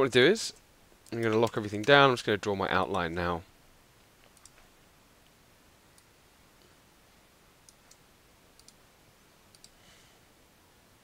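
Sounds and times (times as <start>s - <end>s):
computer mouse clicks: 1.0s - 2.0s, 4.2s - 4.7s, 7.6s - 8.0s, 8.6s - 8.8s, 9.5s - 9.8s.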